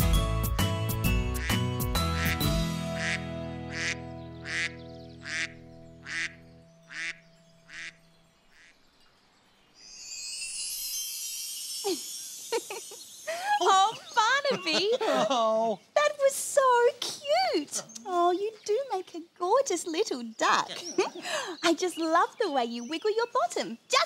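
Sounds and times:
duck quack sound effects: 2.2s - 7.2s
high twinkling shimmer: 7.4s - 15.4s.

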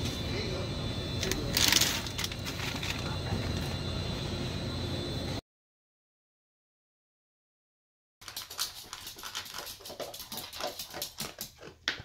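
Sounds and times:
dog crunching food: 8.2s - 12.0s.

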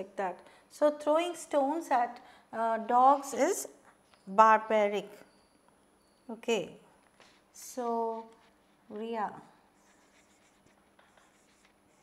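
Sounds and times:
marker writing on whiteboard: 9.8s - 12.0s.

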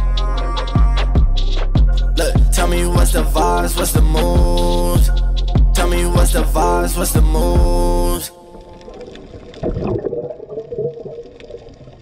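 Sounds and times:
breath bubbling underwater: 8.6s - 12.0s.

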